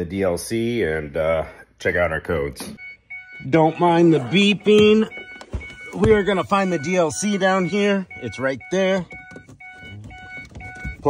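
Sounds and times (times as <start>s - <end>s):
electronic warning beeps: 2.7s - 11.0s.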